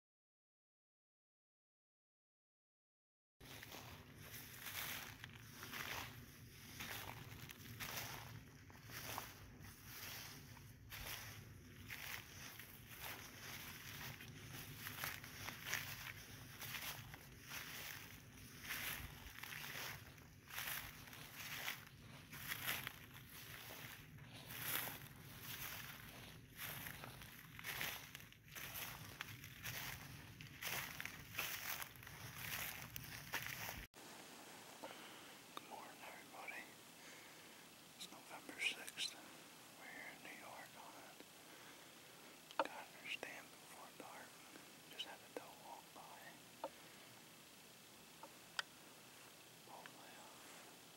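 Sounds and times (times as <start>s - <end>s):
footsteps crunching on frosty grass: 3.4s - 50.9s
small rustles: 3.4s - 50.9s.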